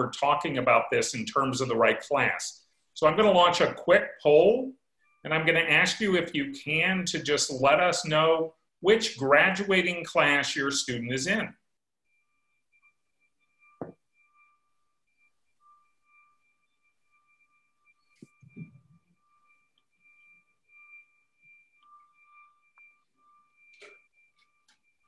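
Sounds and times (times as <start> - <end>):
thin wavering high tone: 0.0 - 25.0.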